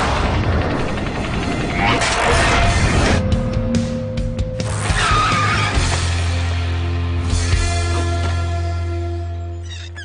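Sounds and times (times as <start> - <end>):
background music: 0.0 - 10.0
cartoon bicycle skid squeal: 4.9 - 5.8, 9.6 - 10.0.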